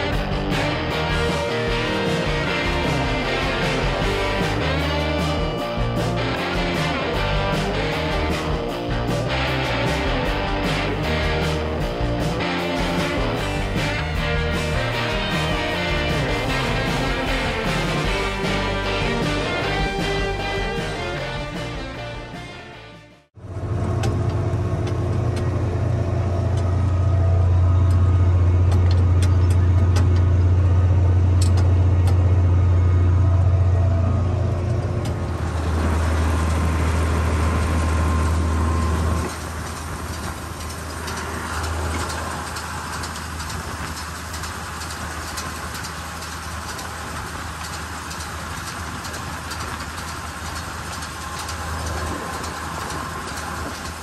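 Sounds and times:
tractor engine droning: 0.0s - 54.0s.

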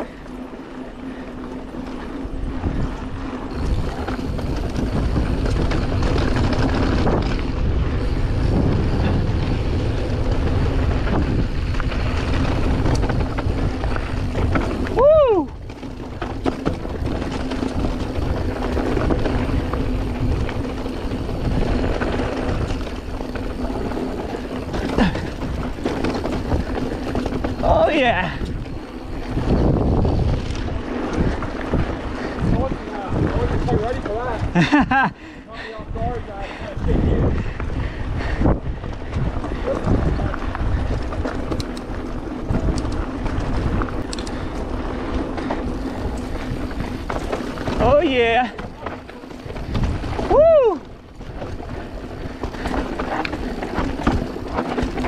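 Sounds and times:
bike tyres rumbling on dirt: 0.0s - 55.0s
wind buffeting microphone: 0.0s - 55.0s.

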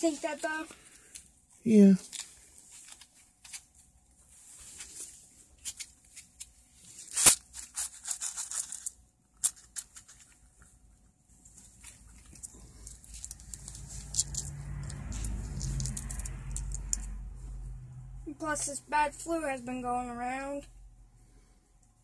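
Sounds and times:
paper wrapper tearing: 7.0s - 8.7s
low rumble: 12.5s - 18.4s
coins clicking in hand: 13.2s - 17.1s.

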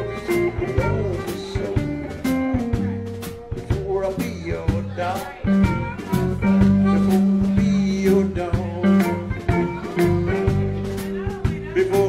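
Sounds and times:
amplified blues harmonica: 0.0s - 11.2s
drum kit: 0.0s - 12.0s
electric bass: 0.0s - 12.0s
electric guitars: 0.0s - 12.0s.

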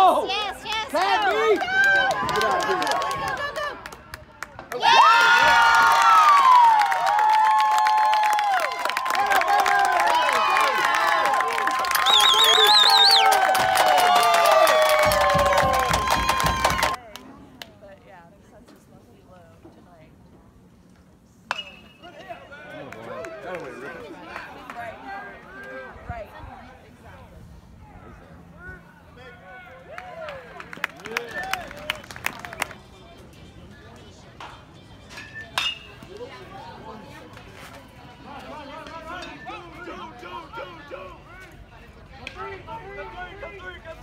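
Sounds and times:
spectators' voices: 21.8s - 44.0s.

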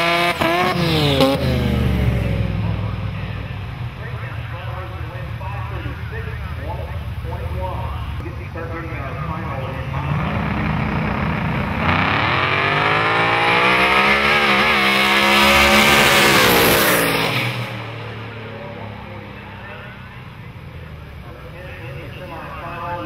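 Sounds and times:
drag car engines roaring: 0.0s - 23.0s.

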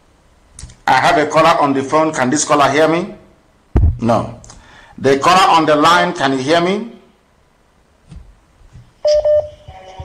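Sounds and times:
steady telephone tone: 9.0s - 10.0s
telephone line beeps: 9.0s - 10.0s.

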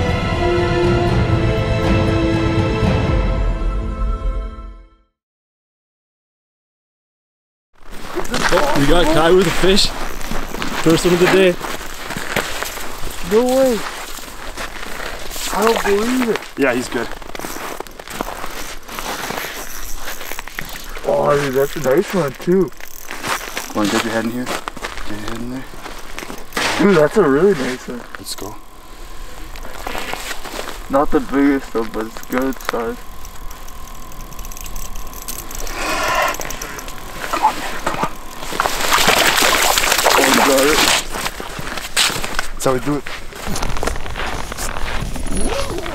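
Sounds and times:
snow crunching: 7.8s - 34.4s, 35.6s - 45.9s.

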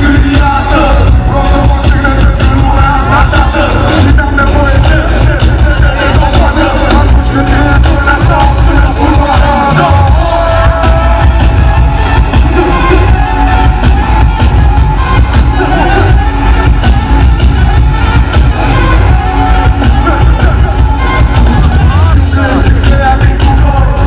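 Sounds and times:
crowd noise: 0.0s - 24.0s
live band playing loud: 0.0s - 24.0s
person singing into a microphone: 0.0s - 24.0s.

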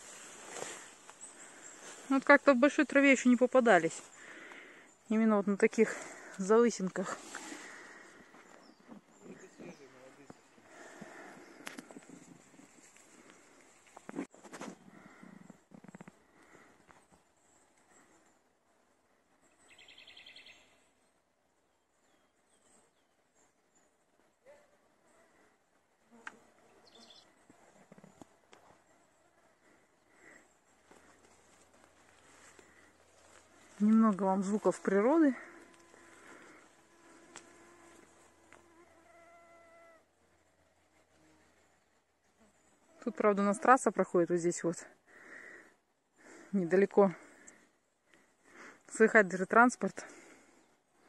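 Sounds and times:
faint bird chirps: 19.4s - 21.2s, 26.6s - 28.2s.

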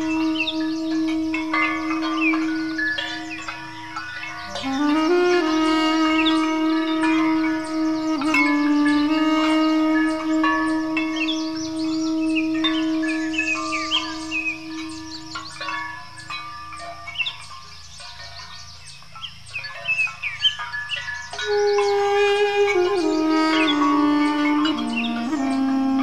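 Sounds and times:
duduk long low note: 0.0s - 3.4s, 4.4s - 15.6s, 21.4s - 26.0s
sheep bells ringing: 0.0s - 5.5s, 6.2s - 26.0s
birds chirping: 0.0s - 26.0s.

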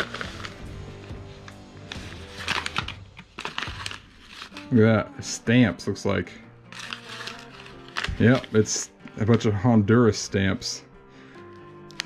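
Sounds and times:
paper envelope rustling: 0.0s - 4.8s, 6.7s - 9.6s
soft background music: 0.0s - 12.0s.

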